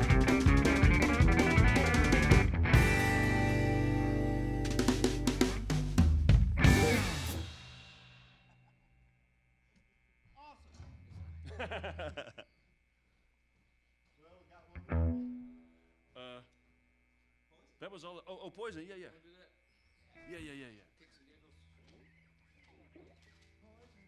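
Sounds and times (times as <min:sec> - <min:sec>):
live rock band playing: 0:00.0 - 0:07.4, 0:14.8 - 0:15.6.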